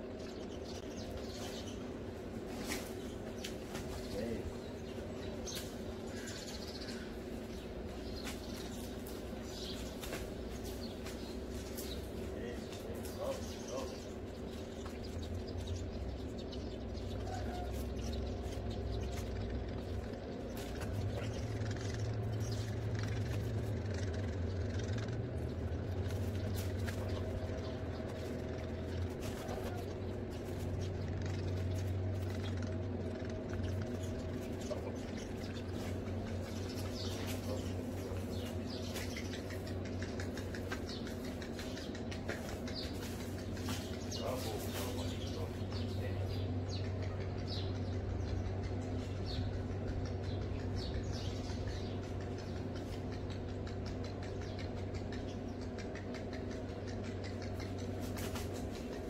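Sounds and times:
small birds chirping: 0.0 - 59.0
steady low hum: 0.0 - 59.0.

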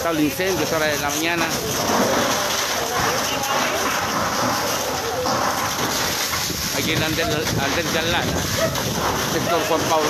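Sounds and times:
faint voices: 0.0 - 10.0
fire burning: 0.0 - 10.0
fire hose spraying water: 0.0 - 10.0.

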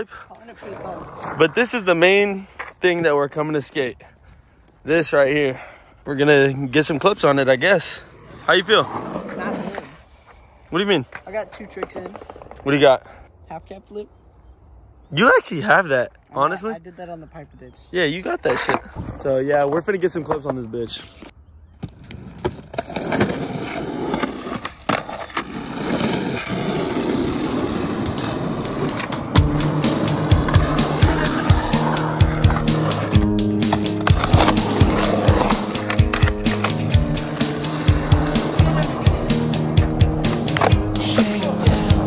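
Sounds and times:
skateboard wheels rolling on concrete: 0.0 - 3.9, 4.9 - 14.0, 18.0 - 42.0
skateboard clacks: 28.1 - 41.0
music with a steady beat: 29.4 - 42.0.

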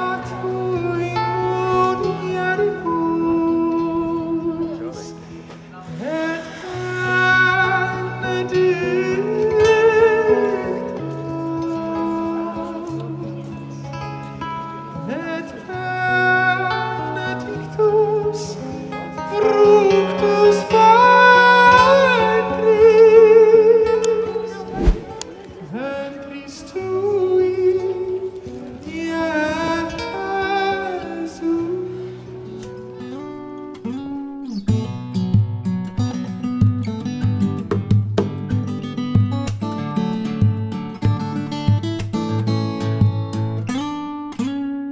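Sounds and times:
man singing wordless melody: 0.0 - 5.2, 5.8 - 13.7, 14.9 - 24.8, 25.6 - 32.1
acoustic guitar strumming: 0.0 - 44.9.

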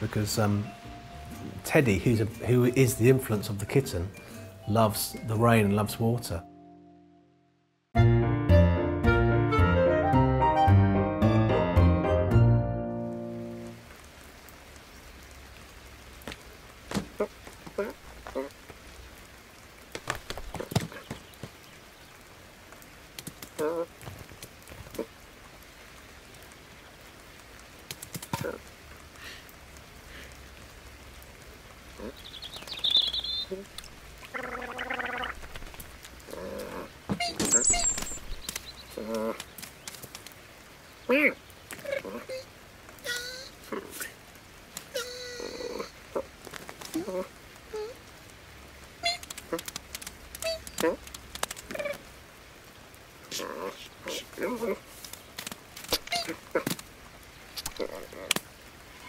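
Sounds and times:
cartoon light rain: 0.0 - 6.5, 8.0 - 59.0
cartoon drips: 34.2 - 35.4.

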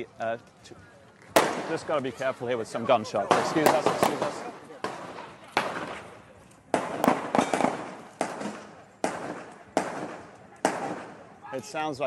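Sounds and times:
gunshots echoing: 1.4 - 2.0, 3.3 - 11.4.

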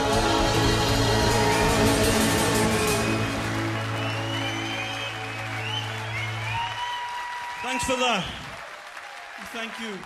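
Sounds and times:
audience whistling: 0.8 - 9.6
audience applause: 1.0 - 10.0.

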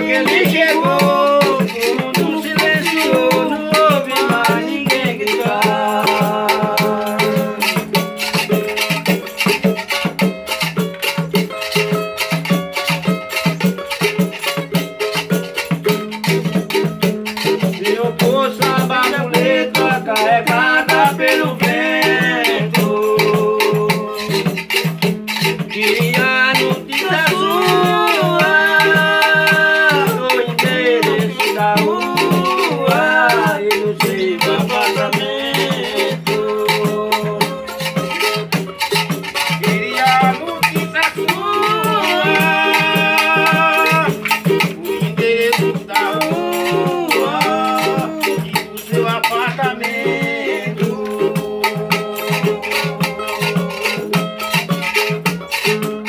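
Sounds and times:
men singing: 0.0 - 9.6, 13.5 - 55.9
small guitar strummed: 0.0 - 56.0
tambourines and frame drums: 0.0 - 56.0.

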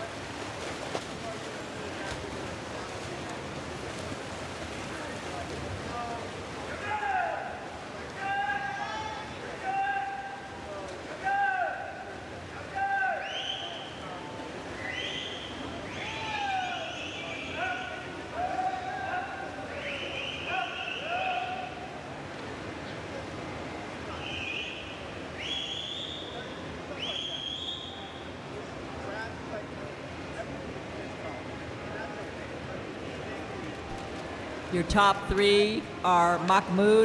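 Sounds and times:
busy indoor pool hall noise: 0.0 - 37.0
people shouting encouragement: 6.7 - 10.5, 11.2 - 13.3.

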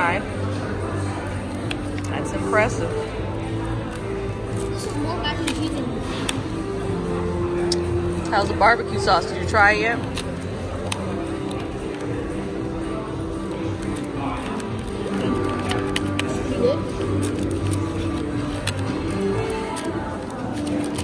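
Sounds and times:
background music: 0.0 - 21.0
murmur of diners' voices: 0.0 - 21.0.

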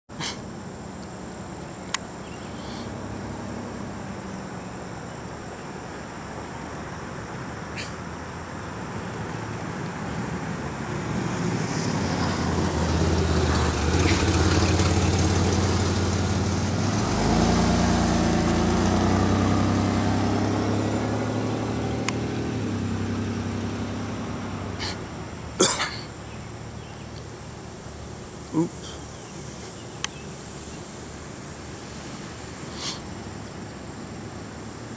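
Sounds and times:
vehicle engine passing by: 2.4 - 4.9, 7.4 - 25.6.

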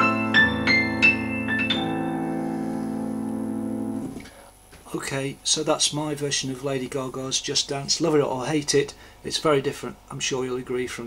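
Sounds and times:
keyboard piano chord and notes: 0.0 - 4.3.

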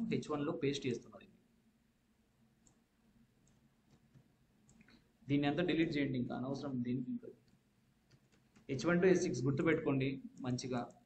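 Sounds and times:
computer mouse clicks: 2.6 - 2.8, 3.4 - 5.0, 7.4 - 8.8.

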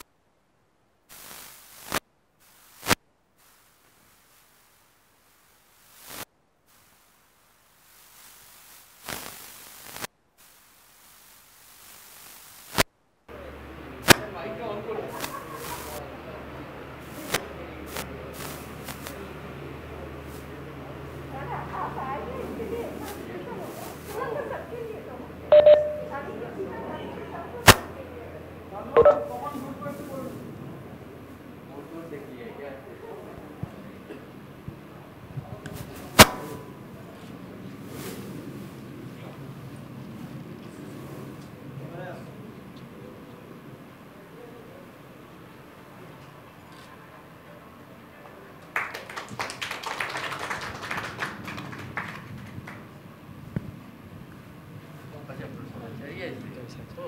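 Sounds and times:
low electrical hum: 13.0 - 47.6
faint murmured voices: 13.3 - 57.0
sharp knock: 36.2 - 36.6.

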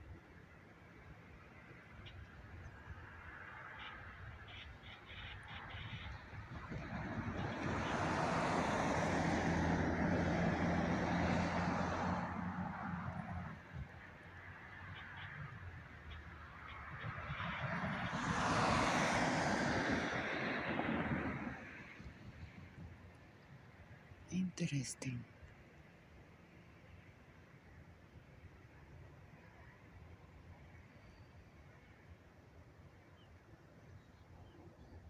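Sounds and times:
tyre noise of passing vehicles: 0.0 - 35.0.

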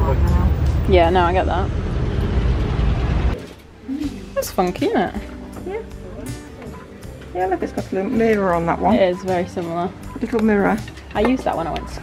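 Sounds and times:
traffic rumble: 0.0 - 7.7.

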